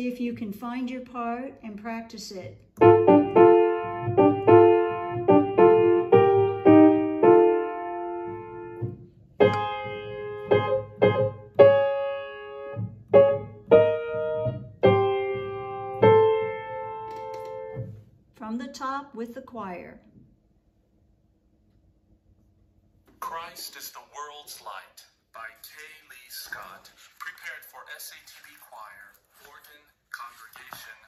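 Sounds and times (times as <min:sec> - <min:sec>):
piano notes: 0:02.8 - 0:18.1.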